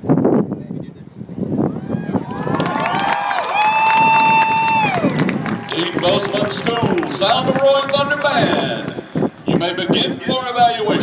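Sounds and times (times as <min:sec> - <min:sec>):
crowd noise: 0:02.1 - 0:11.0.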